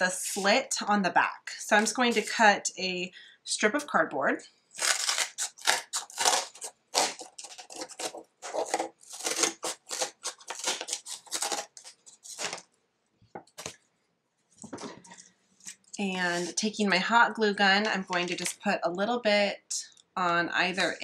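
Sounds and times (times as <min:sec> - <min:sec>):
scissors cutting cardboard: 0:04.8 - 0:12.6.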